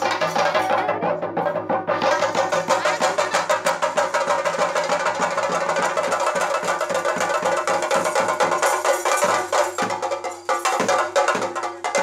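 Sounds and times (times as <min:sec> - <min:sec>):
drums beaten in fast rhythm: 0:00.0 - 0:12.0.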